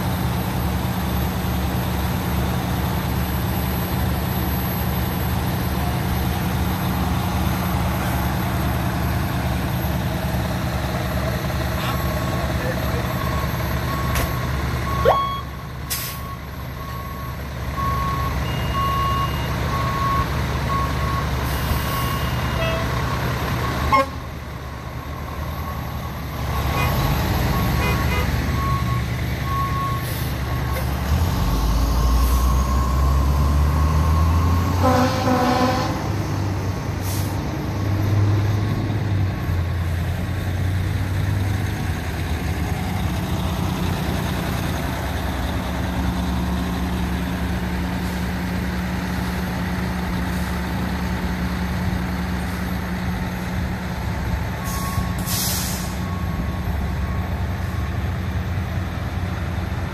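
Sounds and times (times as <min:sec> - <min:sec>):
diesel engines rumbling: 0:00.0 - 0:59.9
truck pulling past: 0:00.0 - 0:59.9.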